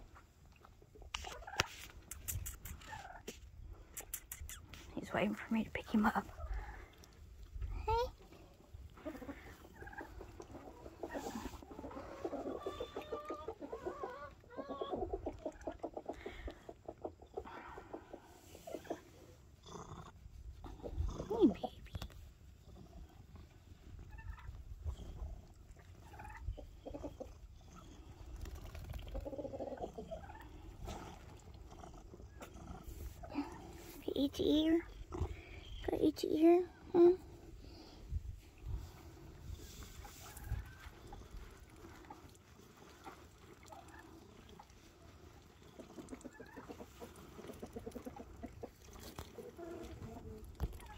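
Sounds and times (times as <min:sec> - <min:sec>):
chickens clucking: 0:00.2 - 0:04.8, 0:08.9 - 0:19.4, 0:26.0 - 0:30.9, 0:39.9 - 0:50.9.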